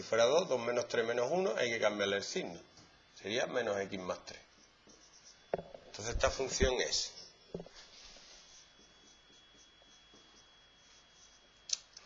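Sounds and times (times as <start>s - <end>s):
thin high whine: 0.0s - 12.0s
marker writing on whiteboard: 4.4s - 11.6s.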